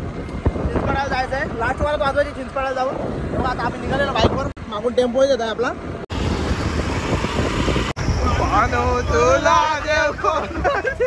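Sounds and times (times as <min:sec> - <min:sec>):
wind on microphone: 0:00.0 - 0:04.6, 0:05.6 - 0:11.0
motorbike engine and road noise: 0:00.0 - 0:11.0.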